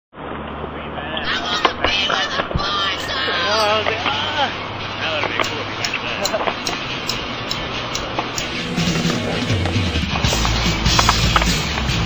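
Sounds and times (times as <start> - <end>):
steady outdoor noise: 0.2 - 12.0
sharp clacks: 5.2 - 8.6.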